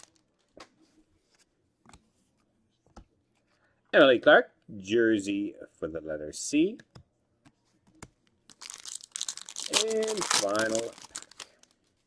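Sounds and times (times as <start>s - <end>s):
foil wrapper crinkling: 0.0s - 0.2s, 8.5s - 12.0s.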